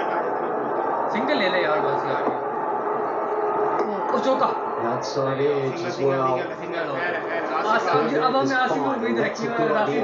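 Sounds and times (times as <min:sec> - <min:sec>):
crowd noise: 0:00.0 - 0:10.0
faint commentary: 0:00.0 - 0:10.0.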